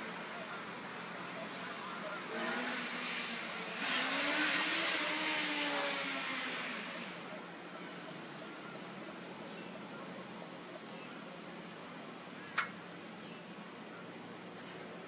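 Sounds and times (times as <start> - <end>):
vehicle passing by: 1.3 - 8.0.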